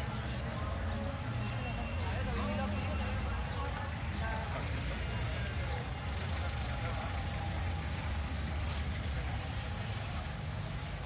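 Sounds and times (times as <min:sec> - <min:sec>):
chatter of passers-by: 0:00.0 - 0:11.0
motor vehicle engine rumble: 0:00.0 - 0:11.0.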